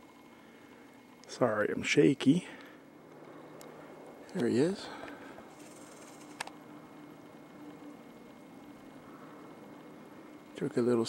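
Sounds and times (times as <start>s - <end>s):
faint low hum: 0.0s - 11.0s
room tone hiss: 0.0s - 11.0s.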